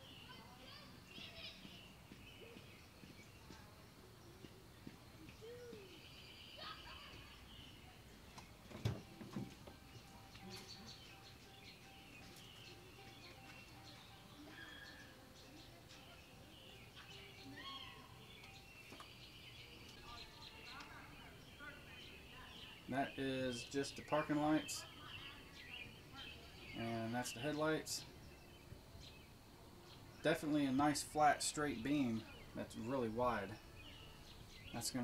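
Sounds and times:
distant children's voices: 0.0s - 29.2s
birds chirping: 0.0s - 35.0s.

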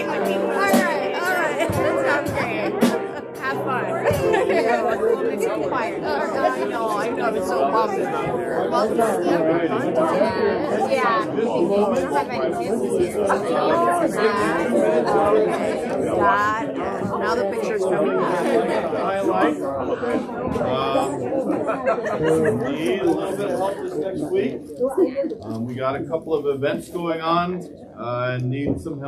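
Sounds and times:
held instrumental notes: 0.0s - 7.1s
crowd of voices chatting: 0.0s - 29.0s.

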